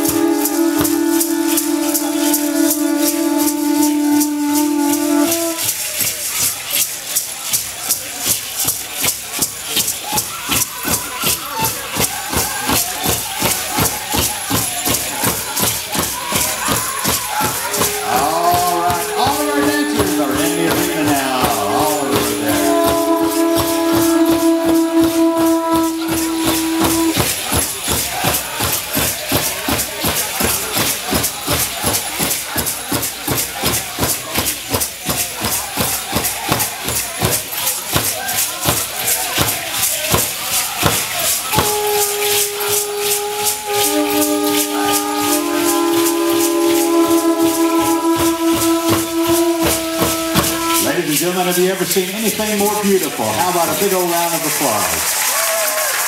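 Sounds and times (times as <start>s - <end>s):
long blown tones: 0.0s - 5.7s, 17.4s - 27.6s, 41.5s - 51.2s
dancers' rattles shaking: 0.0s - 56.0s
percussion: 0.0s - 56.0s.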